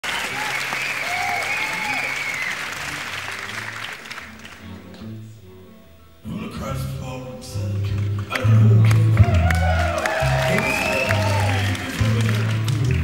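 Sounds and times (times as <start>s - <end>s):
audience applauding and cheering: 0.0s - 5.0s, 8.0s - 13.0s
high whistle or shout: 10.1s - 11.8s.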